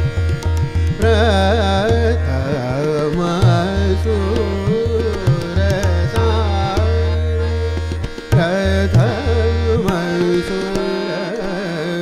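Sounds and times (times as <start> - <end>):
tabla strokes: 0.0 - 11.0
harmonium and tanpura drone: 0.0 - 12.0
man singing ornamented melody: 0.9 - 12.0.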